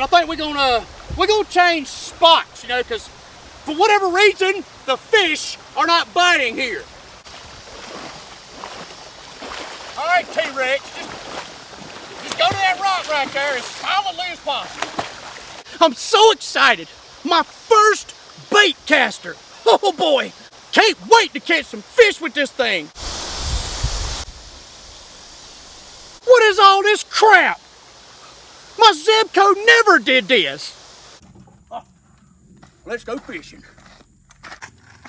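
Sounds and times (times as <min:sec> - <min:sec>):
river water running over rocks: 0:00.0 - 0:31.2
river rushing over rocks: 0:06.4 - 0:15.7
water sloshing from wading: 0:07.2 - 0:15.8
wind buffeting microphone: 0:23.0 - 0:24.6.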